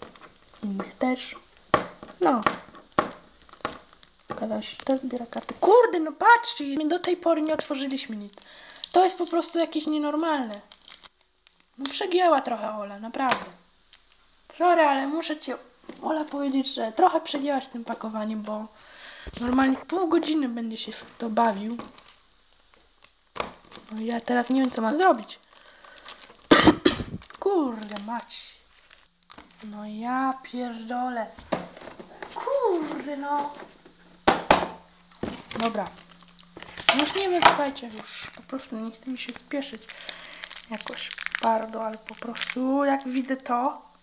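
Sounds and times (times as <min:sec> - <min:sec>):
envelope and tape crinkling: 0:00.0 - 0:44.0
handling plastic package: 0:00.0 - 0:44.0.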